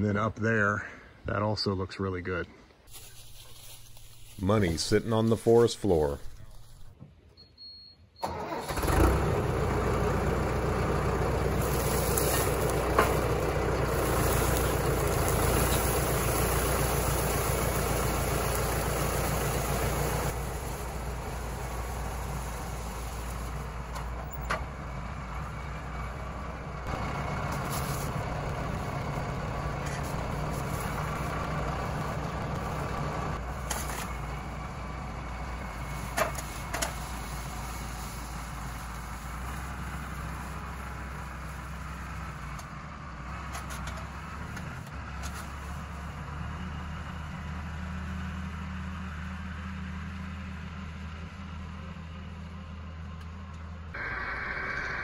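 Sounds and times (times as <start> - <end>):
log dragging over ground: 2.9 - 7.0, 11.4 - 24.4, 26.9 - 34.8, 35.4 - 42.6
tractor diesel engine running: 8.2 - 55.0.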